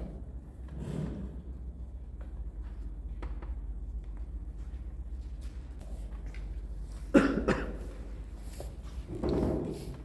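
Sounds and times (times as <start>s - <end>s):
person coughing: 7.1s - 8.0s.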